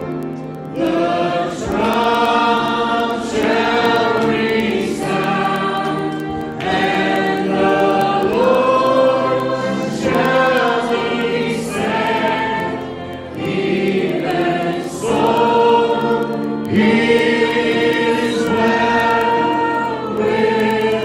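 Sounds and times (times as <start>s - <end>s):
group singing worship song: 0.0s - 21.0s.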